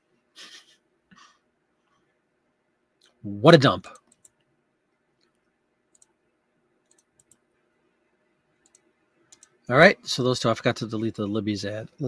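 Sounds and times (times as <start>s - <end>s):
computer mouse clicks: 3.9s - 4.5s, 5.2s - 6.2s, 6.8s - 7.4s, 8.6s - 9.6s.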